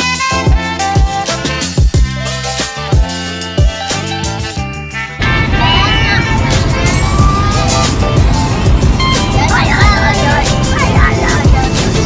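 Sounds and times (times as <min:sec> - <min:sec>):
car road and engine noise: 0:01.7 - 0:12.0
children talking and laughing: 0:05.2 - 0:12.0.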